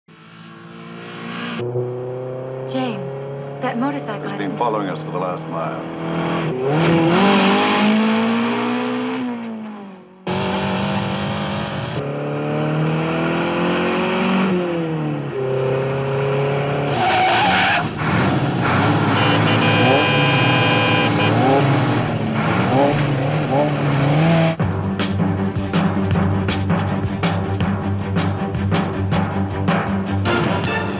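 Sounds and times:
car and motorcycle engines revving: 0.1s - 24.6s.

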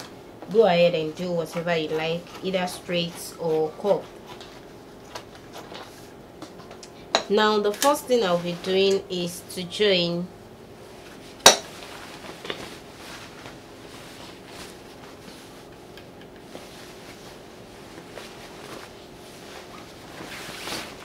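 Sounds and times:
fabric rustling: 10.8s - 15.9s, 16.5s - 21.0s.

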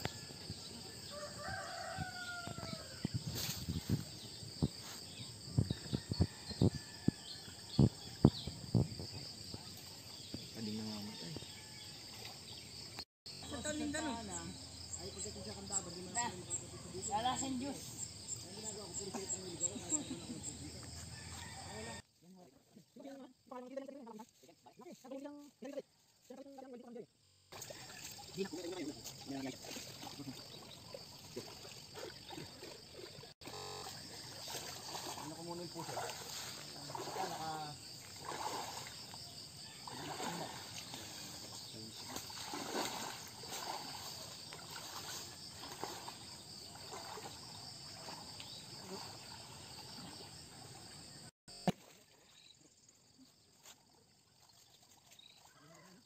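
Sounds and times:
insects chirring: 0.0s - 56.0s.

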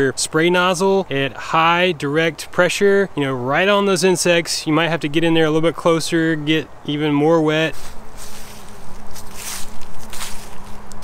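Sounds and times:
footsteps on grass: 7.7s - 11.0s.

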